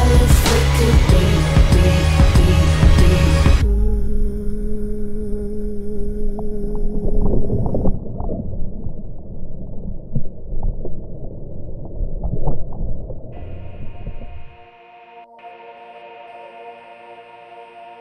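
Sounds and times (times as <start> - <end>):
steady hum: 0.0 - 8.0, 13.4 - 18.0
muffled underwater sound: 3.6 - 14.6.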